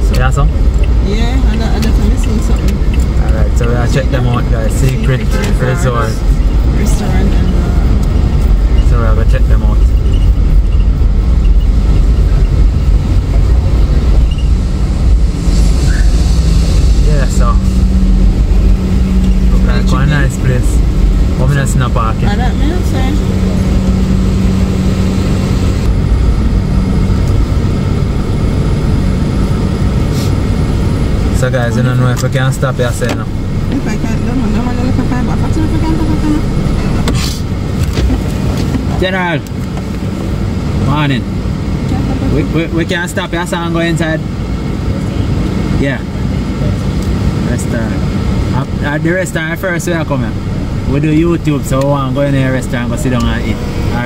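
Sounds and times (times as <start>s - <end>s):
people talking: 0.0s - 10.2s, 17.0s - 17.8s, 19.3s - 23.8s, 31.3s - 39.5s, 40.8s - 41.3s, 41.9s - 44.3s, 44.9s - 54.0s
car engine and road noise: 0.0s - 54.0s.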